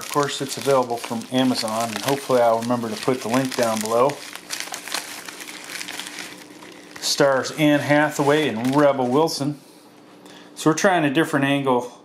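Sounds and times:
plastic mailer crinkling: 0:00.0 - 0:09.5.

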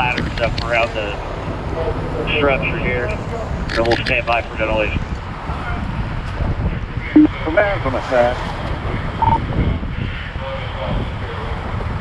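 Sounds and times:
fire engine running: 0:00.0 - 0:11.9.

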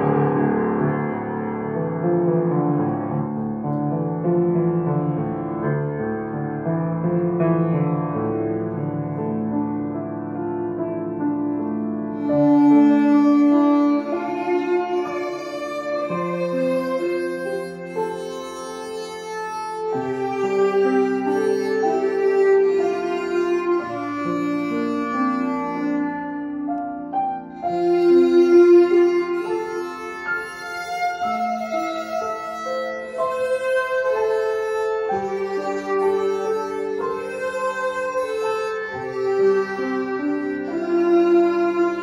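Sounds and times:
grand piano: 0:00.0 - 0:42.0
violin long held notes: 0:11.6 - 0:42.0.

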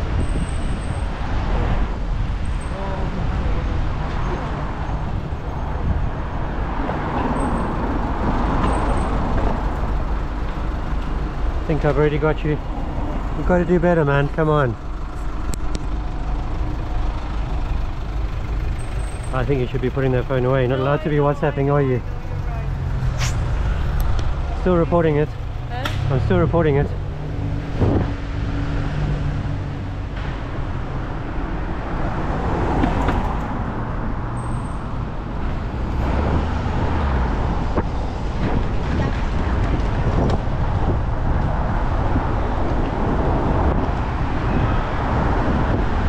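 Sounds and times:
car engines idling: 0:00.0 - 0:36.0
road traffic: 0:00.0 - 0:46.0.

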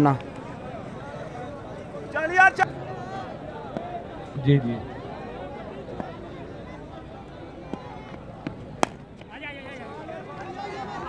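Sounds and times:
voices calling out: 0:00.0 - 0:11.0
bat hitting cricket ball: 0:07.7 - 0:09.3.

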